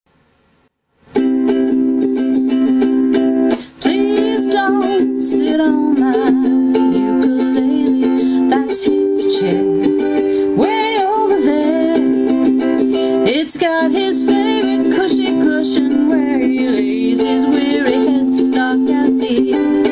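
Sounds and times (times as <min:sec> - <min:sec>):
ukulele strummed chords: 0:01.0 - 0:19.9.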